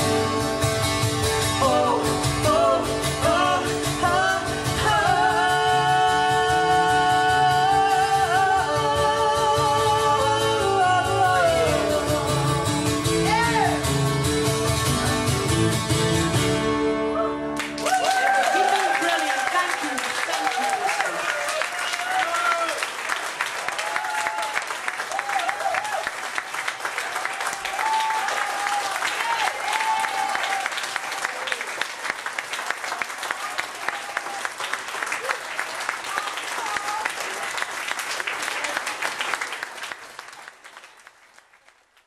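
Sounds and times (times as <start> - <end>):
audience applauding: 17.6 - 42.0.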